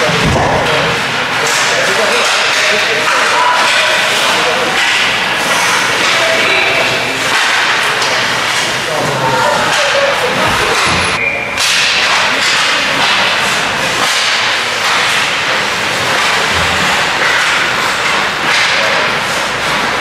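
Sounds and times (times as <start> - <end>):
sticks slapping puck: 0.1 - 20.0.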